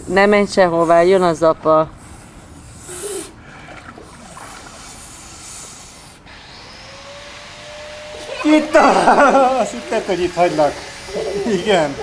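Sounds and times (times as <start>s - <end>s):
water swishing and lapping: 2.0s - 6.0s.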